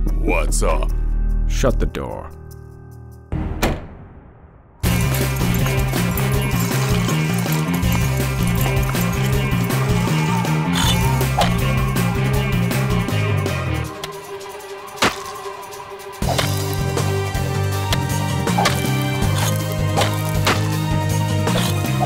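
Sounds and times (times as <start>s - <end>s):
music with repeating bass line: 4.8s - 14.0s.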